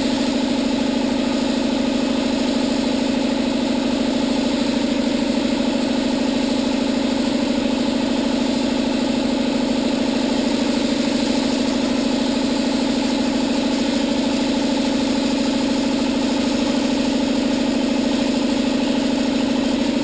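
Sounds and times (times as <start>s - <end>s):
air compressor running: 0.0s - 20.0s
spray gun air hiss: 10.3s - 12.1s.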